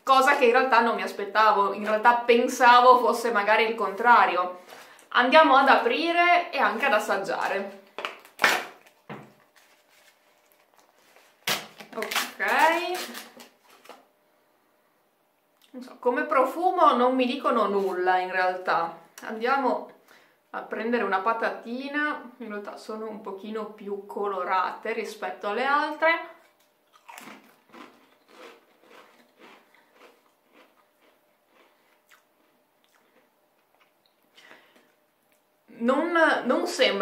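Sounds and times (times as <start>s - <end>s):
potato crisp crunching: 26.4s - 34.2s.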